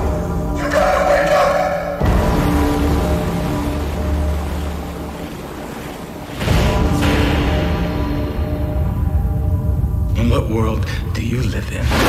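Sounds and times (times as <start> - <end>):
rushing water surge: 2.0 - 8.7.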